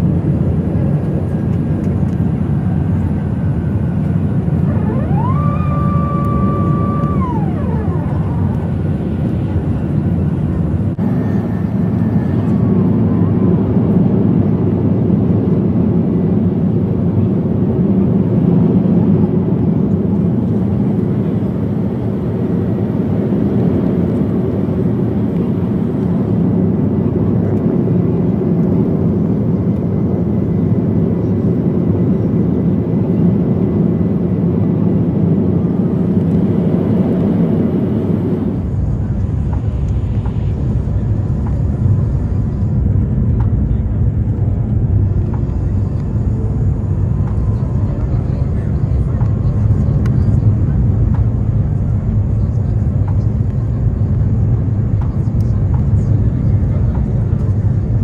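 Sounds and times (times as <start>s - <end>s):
airplane cabin engine roar: 0.0s - 58.0s.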